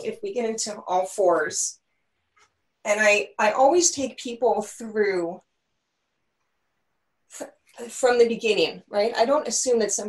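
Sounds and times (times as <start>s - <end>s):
woman speaking: 0.0s - 1.8s, 2.8s - 5.4s, 7.3s - 10.0s.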